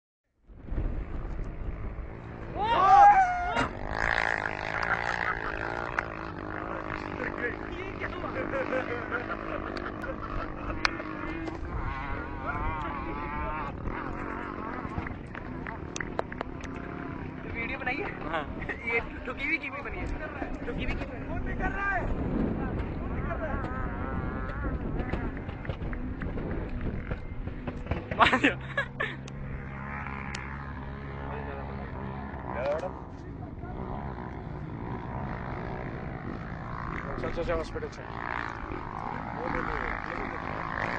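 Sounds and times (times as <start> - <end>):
car engine at high revs: 1.2 - 18.8, 22.2 - 40.9
car engine running steadily: 24.5 - 34.8.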